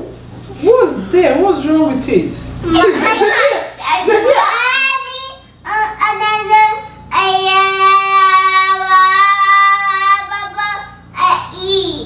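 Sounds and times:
child calling and wailing: 3.2s - 12.0s.

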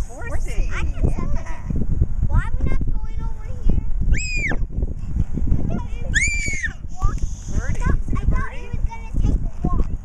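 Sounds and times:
wind buffeting microphone: 0.0s - 10.0s
toddler squealing: 4.1s - 4.6s, 6.0s - 6.8s.

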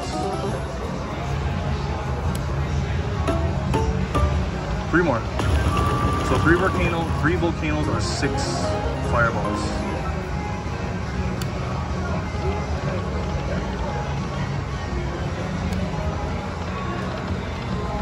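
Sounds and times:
slot machine electronic music: 3.3s - 10.4s
slot machine reel-spin sounds: 5.3s - 9.8s
casino floor din: 5.4s - 7.4s.

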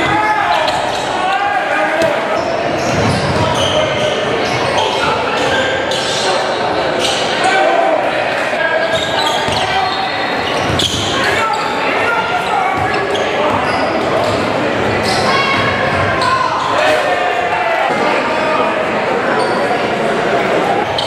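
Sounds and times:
voices echoing in a hall: 0.0s - 21.0s
sneakers squeaking on hardwood: 8.9s - 11.8s.

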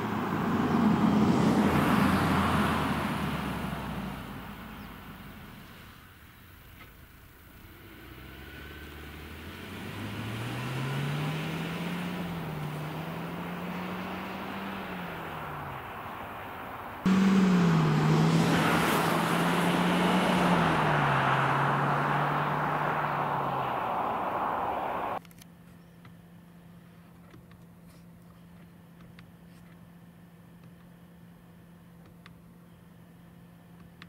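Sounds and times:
car engine accelerating: 0.0s - 5.5s, 7.6s - 25.2s
tyre and road noise: 7.7s - 25.4s.

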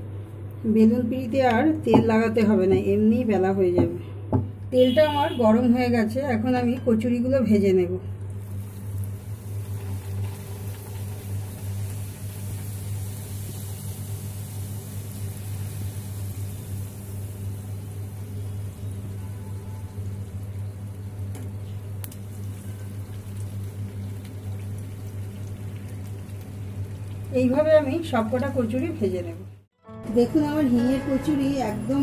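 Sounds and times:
constant low hum: 0.0s - 32.0s
food sizzling in hot oil: 8.2s - 29.3s.

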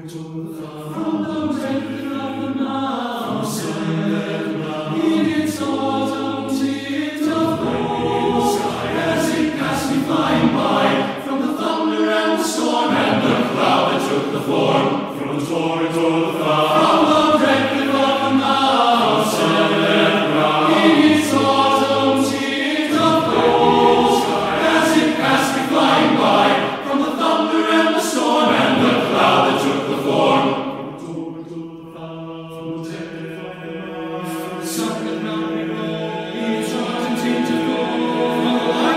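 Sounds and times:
men's chorus singing a cappella: 0.0s - 38.9s.

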